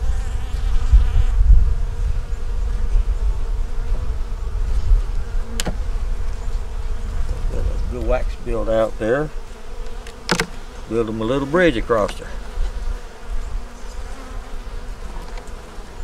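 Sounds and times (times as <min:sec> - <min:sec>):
wind on microphone: 0:00.0 - 0:09.7, 0:12.3 - 0:15.6
bees buzzing: 0:00.0 - 0:16.0
sharp click: 0:05.5 - 0:05.8, 0:09.9 - 0:10.6.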